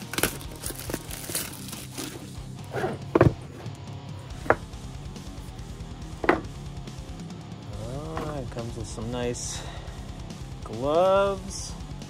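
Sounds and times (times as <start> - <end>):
packaging crinkling and rustling: 0.0 - 2.3.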